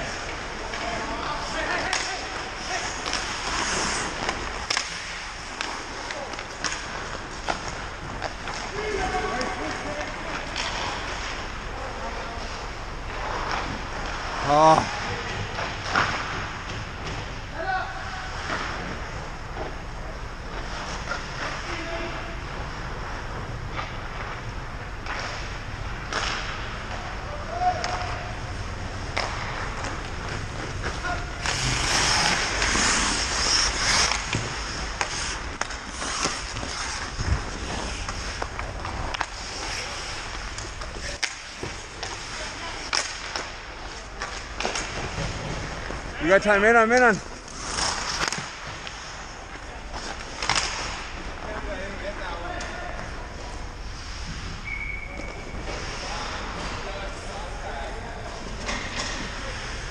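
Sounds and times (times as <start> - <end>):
hockey sticks and puck clacking: 0.0 - 59.9
skates scraping ice: 0.0 - 59.9.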